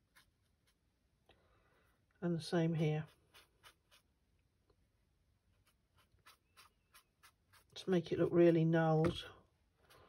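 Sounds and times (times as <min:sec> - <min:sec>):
brush strokes on rough paper: 0:00.0 - 0:02.1, 0:02.7 - 0:04.2, 0:05.4 - 0:08.5, 0:09.4 - 0:10.0.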